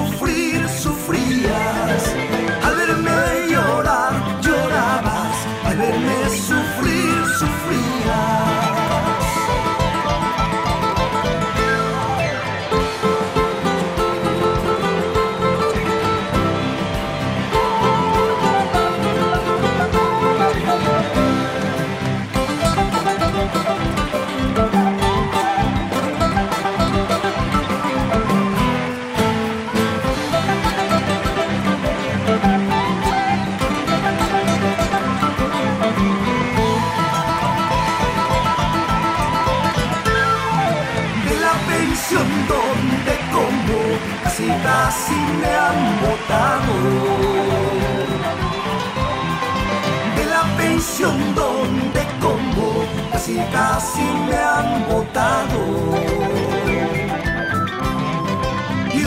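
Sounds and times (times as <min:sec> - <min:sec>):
bass: 0:00.0 - 0:59.0
drums: 0:00.0 - 0:59.0
live band playing folk music: 0:00.0 - 0:59.0
nylon-string guitar plucking: 0:00.0 - 0:59.0.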